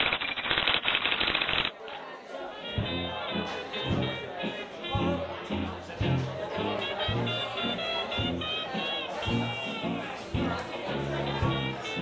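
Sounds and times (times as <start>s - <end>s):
faint music: 1.7s - 12.0s.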